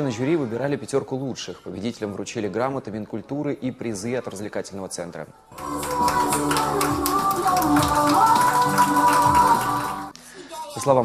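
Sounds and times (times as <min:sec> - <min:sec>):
music playing: 0:05.4 - 0:10.4.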